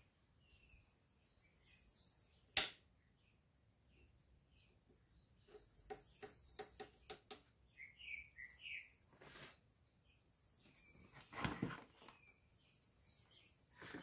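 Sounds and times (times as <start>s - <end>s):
bird chirping: 0.0s - 9.1s, 9.8s - 14.0s.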